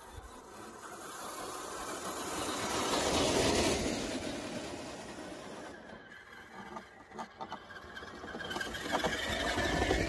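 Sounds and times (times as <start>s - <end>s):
rc car motor and drivetrain: 0.0s - 10.0s
tyres on loose dirt: 0.0s - 10.0s.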